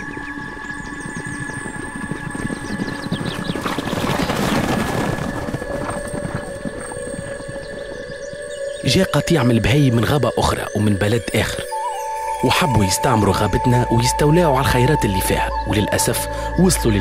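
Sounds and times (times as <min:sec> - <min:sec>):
hooves of stampeding herd: 0:00.0 - 0:10.6.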